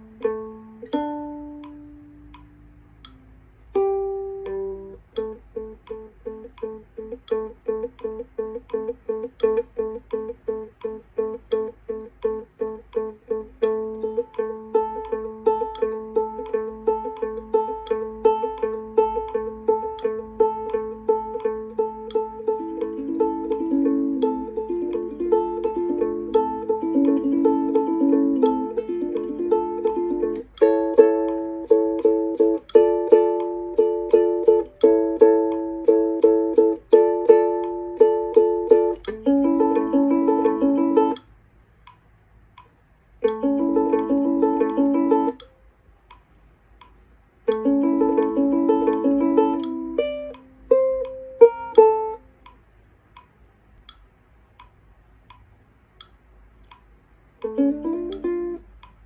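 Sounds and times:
ukulele fingerpicked: 0.0 - 41.3, 42.6 - 52.6, 56.0 - 59.0.

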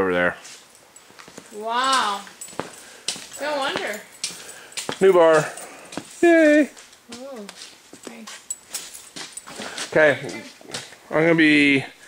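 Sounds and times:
person making wordless call: 9.6 - 10.8.

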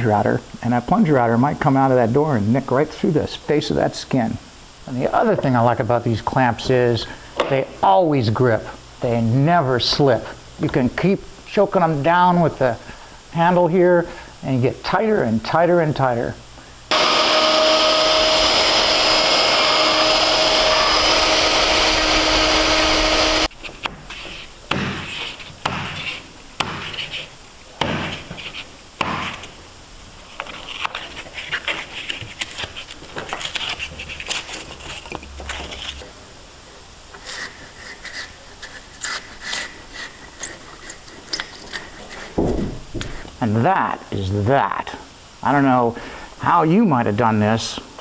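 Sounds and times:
plunge router cutting foam: 16.9 - 23.5
foam rubbing and scraping: 30.5 - 36.1.

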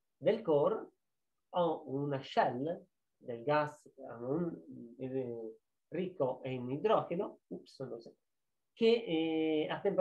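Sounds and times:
man lecturing: 0.1 - 10.0.

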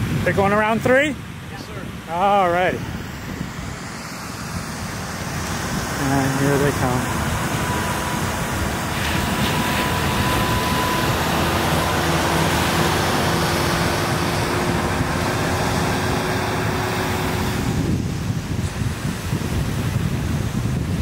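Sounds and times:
surf at the shoreline: 0.0 - 21.0
wind: 0.0 - 21.0.

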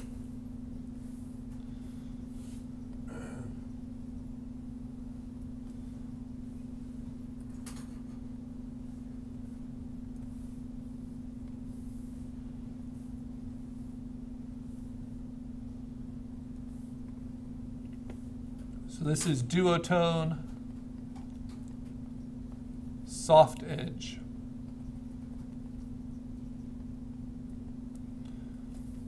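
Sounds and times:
low electrical hum: 0.0 - 29.0.

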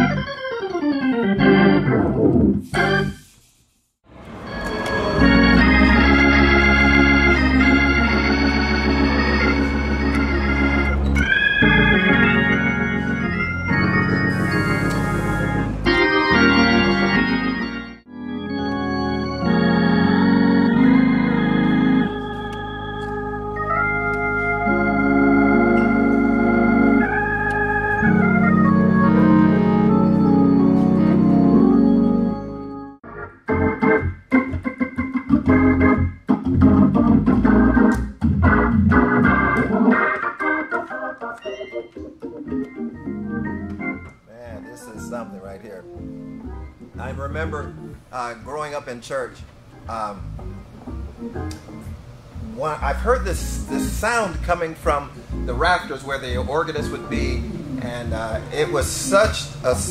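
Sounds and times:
organ chords: 0.0 - 3.3, 4.1 - 59.9.

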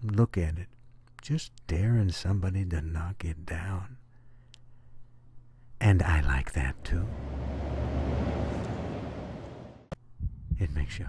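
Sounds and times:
car road and engine rumble: 6.6 - 9.9.

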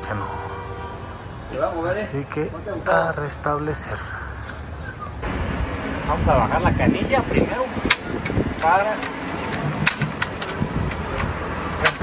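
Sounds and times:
steady low rumble: 5.2 - 12.0
sharp clicks and knocks: 7.8 - 12.0.

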